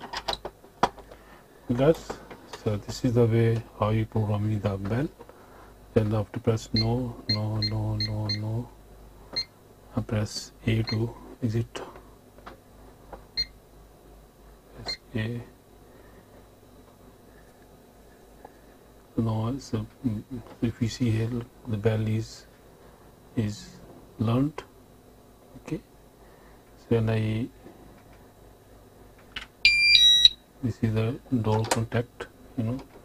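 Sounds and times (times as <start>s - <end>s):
keypad beep: 29.6s - 30.4s.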